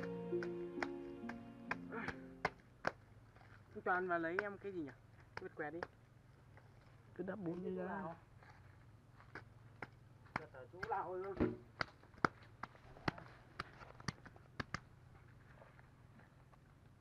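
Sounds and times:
hand patting wet mud: 0:00.0 - 0:03.7.

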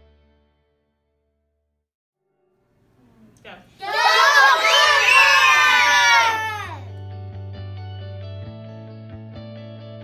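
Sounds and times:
children shouting and cheering: 0:03.8 - 0:07.0.

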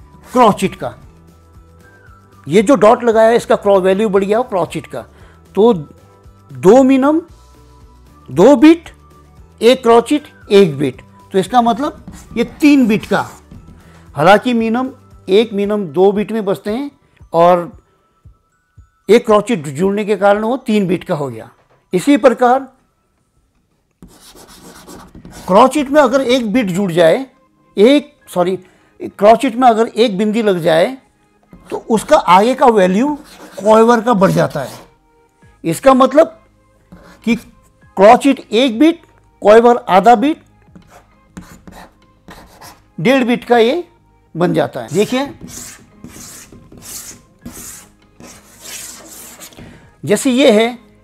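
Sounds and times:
chalk scraping on chalkboard: 0:11.9 - 0:13.8, 0:24.0 - 0:25.8, 0:33.1 - 0:34.9, 0:36.9 - 0:37.4, 0:40.8 - 0:42.8, 0:44.9 - 0:49.7.

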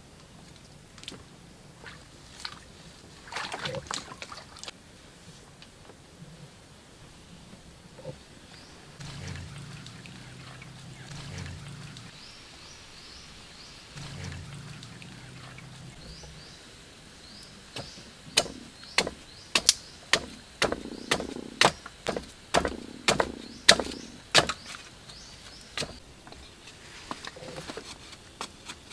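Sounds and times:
low steady hum: 0:00.0 - 0:28.2
machete chopping wooden stick: 0:17.8 - 0:24.8, 0:25.8 - 0:26.0.

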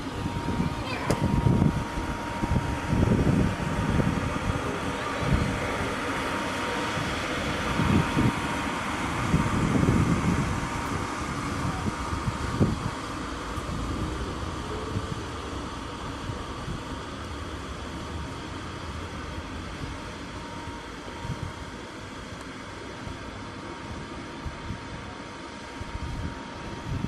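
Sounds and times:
electric blower whooshing and humming: 0:00.0 - 0:27.0
low rumbling thumps: 0:00.3 - 0:04.1.

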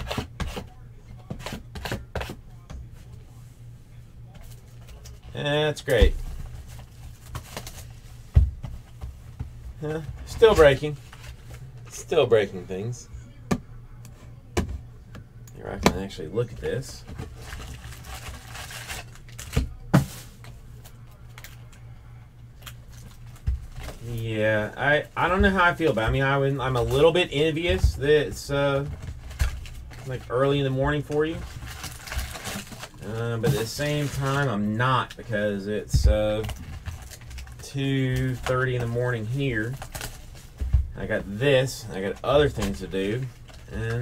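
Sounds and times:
low steady hum: 0:00.0 - 0:44.0
cardboard rustling and crinkling: 0:16.6 - 0:20.5, 0:23.0 - 0:35.1, 0:36.0 - 0:44.0.

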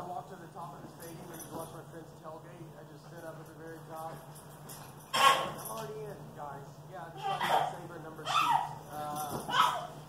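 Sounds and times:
baby squealing: 0:05.2 - 0:05.6, 0:07.2 - 0:08.8, 0:09.4 - 0:10.0
small dog yipping: 0:05.2 - 0:05.6, 0:08.3 - 0:08.8, 0:09.5 - 0:10.0.

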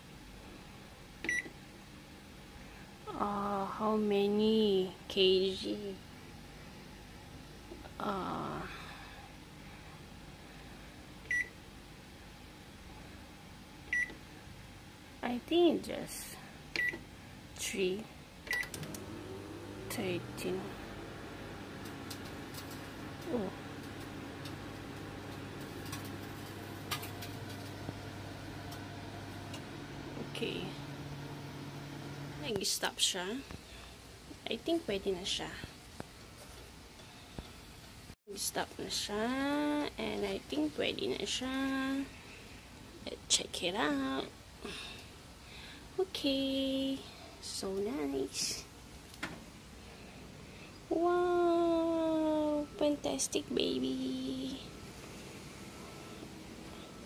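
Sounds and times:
faint steady background hum: 0:00.0 - 0:57.0
microwave oven humming: 0:16.6 - 0:32.6, 0:51.3 - 0:57.0.

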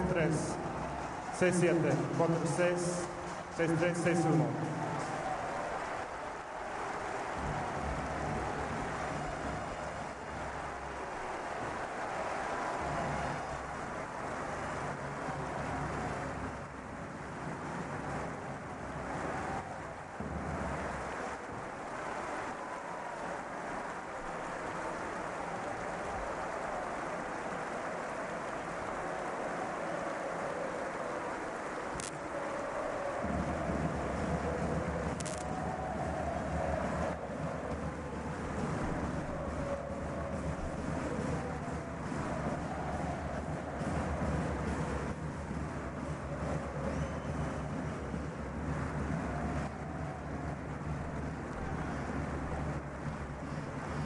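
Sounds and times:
crowd cheering and shouting: 0:00.0 - 0:54.0.

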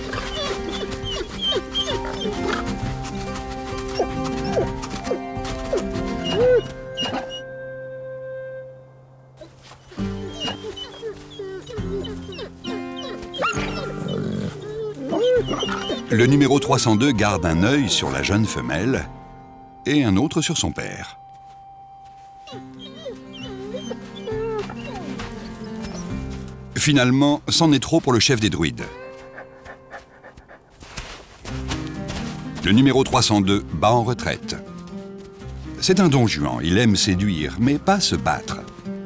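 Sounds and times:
wolf whining: 0:00.0 - 0:07.5, 0:09.4 - 0:19.0, 0:22.4 - 0:26.5, 0:28.8 - 0:30.9
held music notes: 0:00.0 - 0:30.6
wolf growling snarl: 0:13.5 - 0:16.0.

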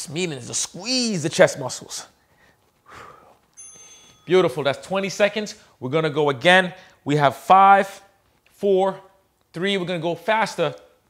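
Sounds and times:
soft breath: 0:02.2 - 0:04.2
electronic timer beep: 0:03.6 - 0:04.4.

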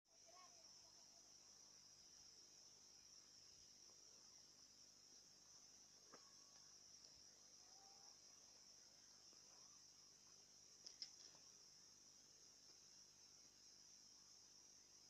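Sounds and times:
faint insect chorus: 0:00.1 - 0:15.0
faint clicks: 0:10.8 - 0:11.5.

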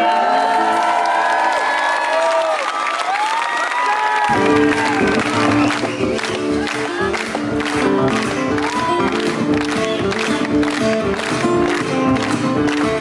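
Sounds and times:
audience cheering and whooping: 0:00.0 - 0:13.0
live rock band playing: 0:04.3 - 0:13.0.

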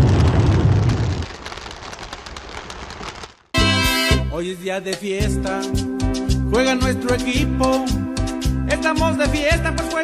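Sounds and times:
deep rumbling burst: 0:00.0 - 0:02.7
faint crackle: 0:00.0 - 0:03.6.

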